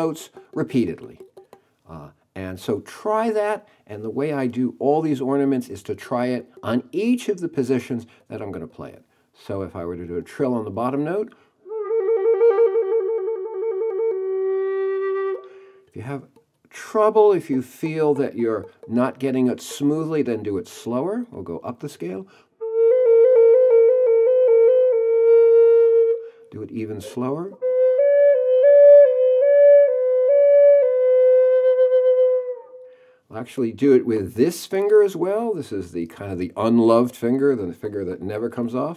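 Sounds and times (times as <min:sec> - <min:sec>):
flute trill: 0:11.7 - 0:15.8, 0:22.6 - 0:26.3, 0:26.9 - 0:32.9.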